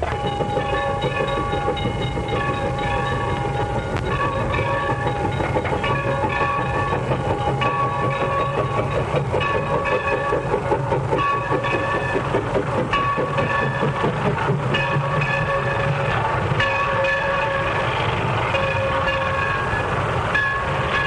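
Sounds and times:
steam locomotive rumble and clatter: 0.0 - 21.0.

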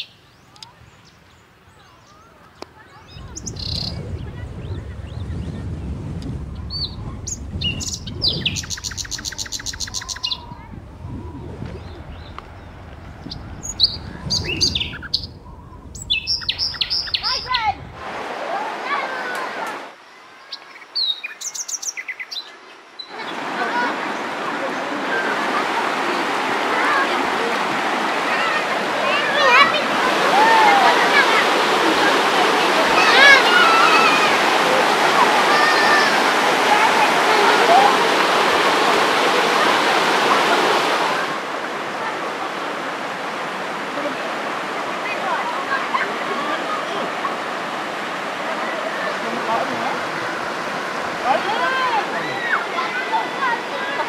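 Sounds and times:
birds chirping: 0.0 - 42.0
low rumble: 3.1 - 8.6, 10.4 - 18.2
rapid bird trill: 7.3 - 10.5, 13.2 - 17.6
river water rushing over rocks: 15.8 - 20.4, 22.9 - 54.0
people calling out: 17.0 - 20.0, 23.1 - 42.7, 48.3 - 54.0.

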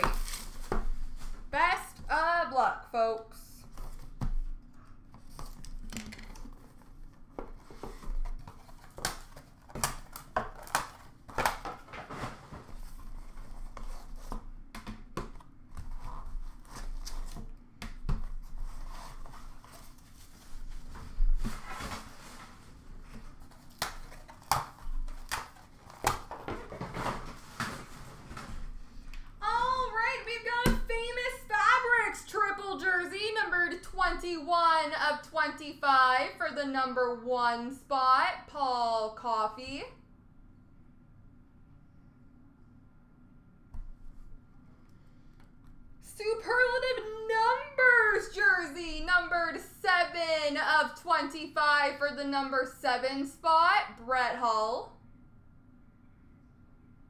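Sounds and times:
person speaking: 1.5 - 3.7, 29.4 - 40.0.

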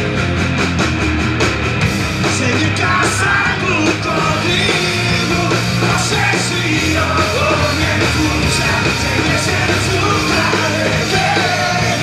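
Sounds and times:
bass guitar: 0.0 - 12.0
distorted electric guitar: 0.0 - 12.0
drum kit: 0.0 - 12.0
shouted vocals: 2.6 - 12.0.

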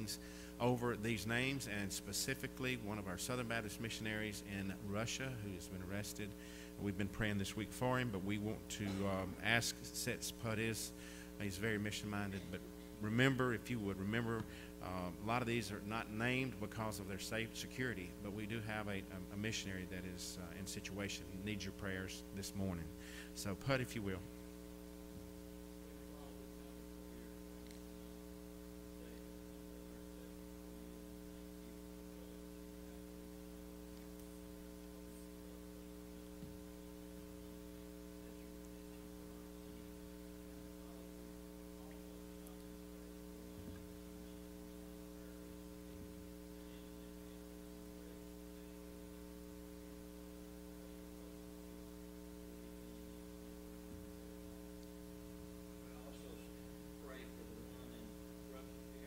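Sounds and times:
electrical mains hum: 0.0 - 59.0.

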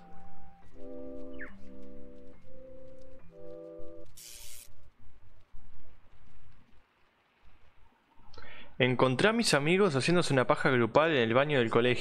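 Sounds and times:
man speaking: 8.8 - 12.0.

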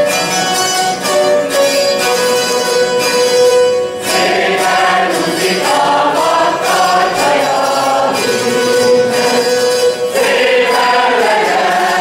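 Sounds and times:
zithers playing: 0.0 - 12.0
mixed choir singing: 4.0 - 12.0.

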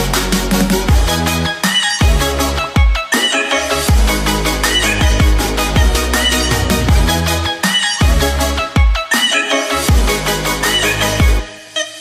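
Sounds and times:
synth melody: 2.0 - 12.0
deep bass hits dropping in pitch: 3.9 - 7.4.

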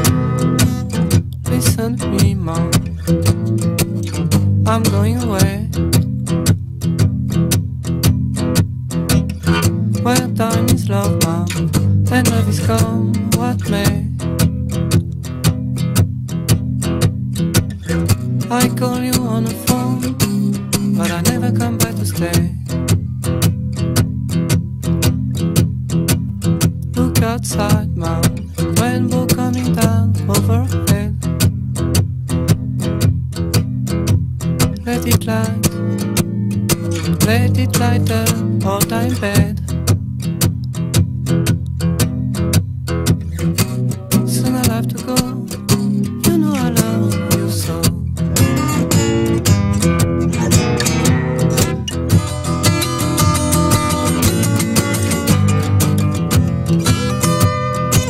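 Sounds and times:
low bass notes: 0.0 - 58.0
strummed guitar chords: 0.0 - 58.0.

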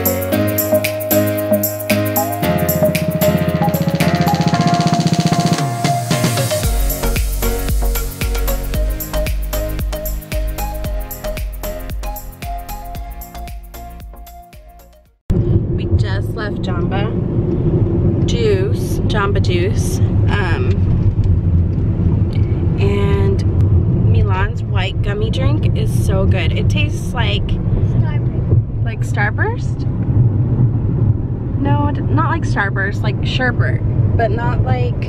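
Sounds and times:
background music: 0.0 - 15.2.

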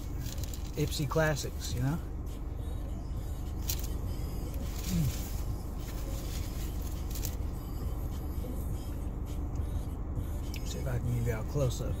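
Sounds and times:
car engine hum: 0.0 - 12.0
person humming mm: 4.8 - 5.4.

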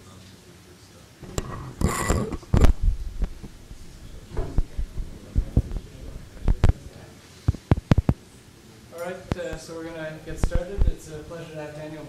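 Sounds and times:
faint room hum: 0.0 - 12.0
soft knocks at a lectern: 4.3 - 5.8.

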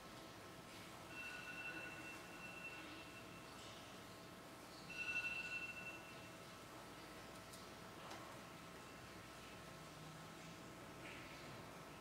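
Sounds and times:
faint high ringing tone: 1.0 - 4.0, 4.7 - 6.6, 8.8 - 9.3.

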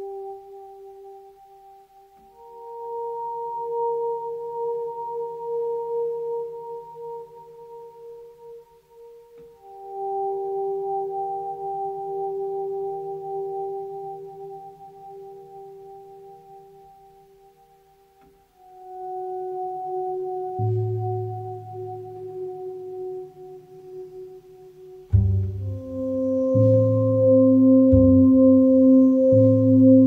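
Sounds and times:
electric piano chords: 18.6 - 30.0.

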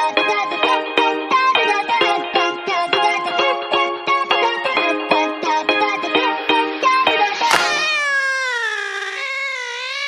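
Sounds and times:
cat meowing: 7.5 - 10.0.

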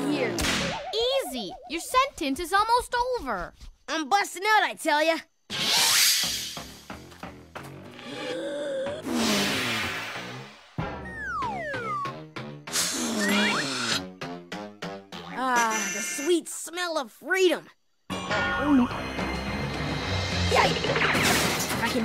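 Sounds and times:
falling whistle glides: 0.6 - 1.8
fast cartoon background music: 9.3 - 16.4, 18.1 - 22.0.

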